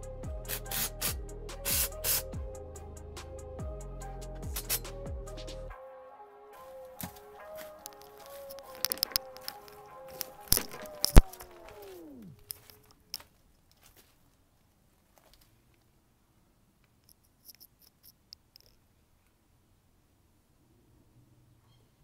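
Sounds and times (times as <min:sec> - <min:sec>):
background music winding down: 0:00.0 - 0:12.9
sharp clicks: 0:07.8 - 0:13.3.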